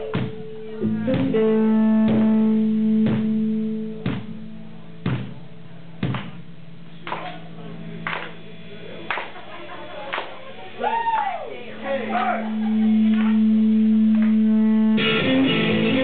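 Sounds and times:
electric guitar chord ringing: 0.0s - 10.7s, 11.6s - 16.0s.

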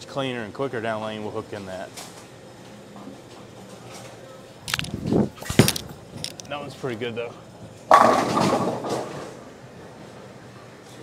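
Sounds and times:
bowling alley hum: 2.3s - 10.8s
bowling ball thudding on lane: 7.9s - 9.2s.

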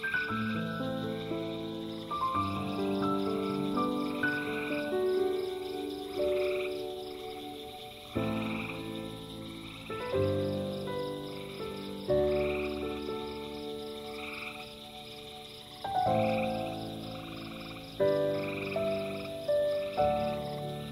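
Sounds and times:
frogs trilling: 0.0s - 20.9s
insects pulsing: 0.0s - 20.9s
soft sustained chords music: 0.0s - 20.9s.

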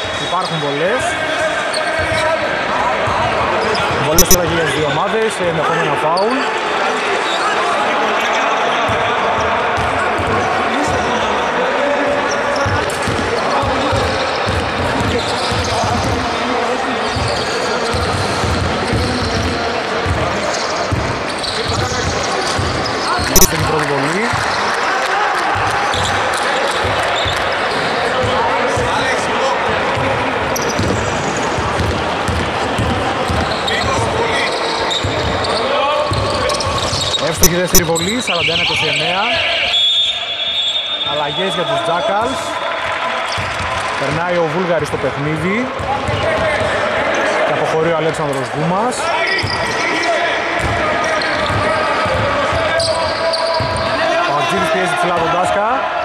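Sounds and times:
players' voices: 0.0s - 56.0s.

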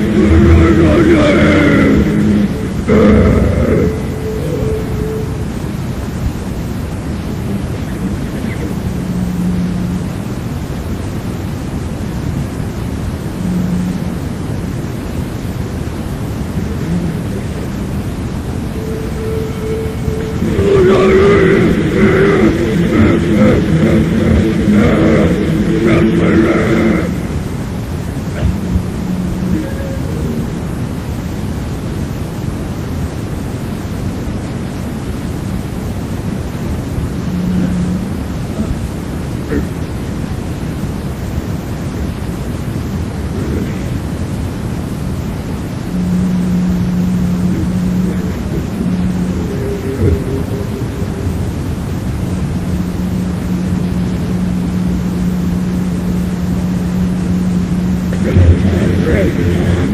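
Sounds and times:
distorted grindcore band playing: 0.0s - 5.4s, 18.6s - 27.4s, 46.0s - 59.9s
held low note: 0.0s - 31.5s, 36.6s - 40.1s, 45.7s - 59.9s
tape hiss: 0.0s - 59.9s.

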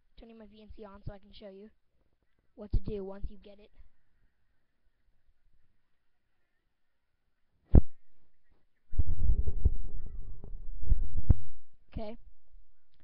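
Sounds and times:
microphone thump: 7.7s - 8.0s, 9.0s - 11.6s.

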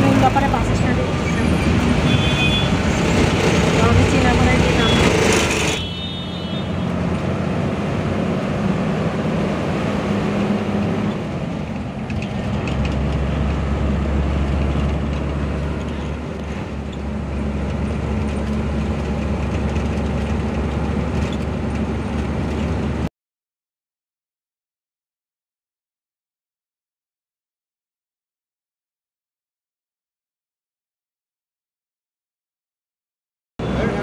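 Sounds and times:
bus engine drone: 0.0s - 23.1s, 33.6s - 34.0s
road noise: 0.0s - 23.1s, 33.6s - 34.0s.

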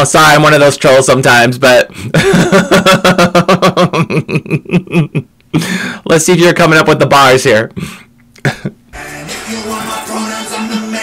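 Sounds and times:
woman laughing: 2.2s - 5.3s
breath: 5.6s - 6.0s, 7.8s - 8.1s.

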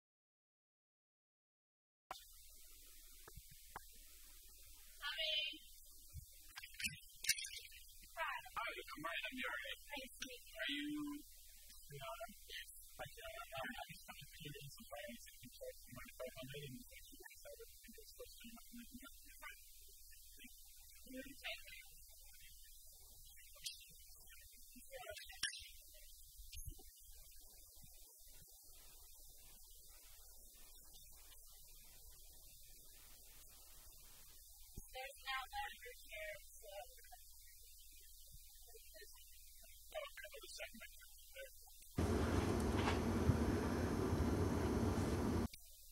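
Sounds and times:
faint indistinct talking: 5.0s - 5.8s, 6.5s - 34.0s, 34.8s - 42.2s
low electrical hum: 42.0s - 45.5s.

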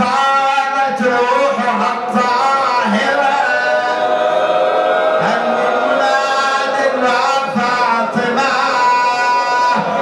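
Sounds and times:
man chanting into a microphone: 0.0s - 4.1s, 5.2s - 10.0s.

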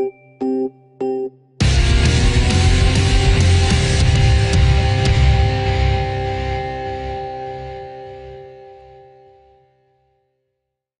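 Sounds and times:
heavy rock chord ringing out: 1.6s - 9.2s.

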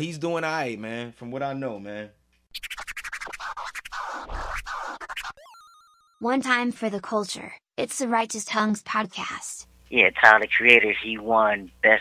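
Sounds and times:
record scratching over a beat: 2.5s - 5.4s.

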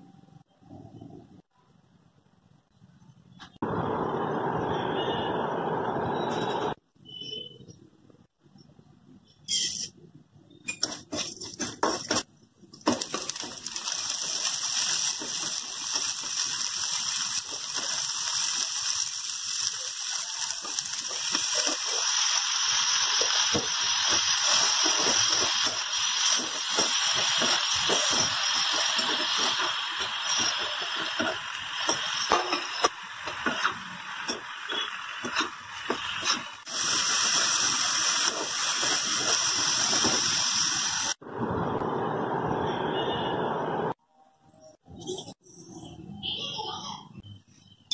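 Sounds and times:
metal spatula scraping and stirring: 10.7s - 12.3s, 23.2s - 36.7s
food sizzling in hot oil: 10.8s - 41.2s.

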